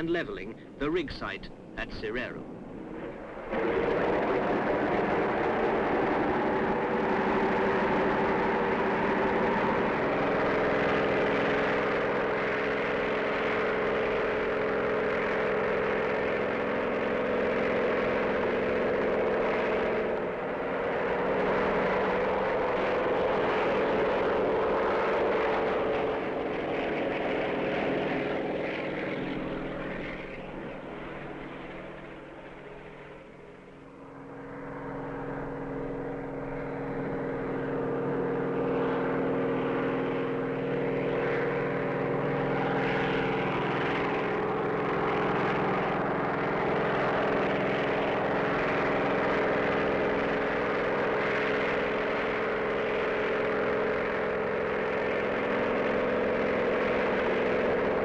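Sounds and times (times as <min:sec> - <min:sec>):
helicopter engine and rotors: 0:00.0 - 0:58.0.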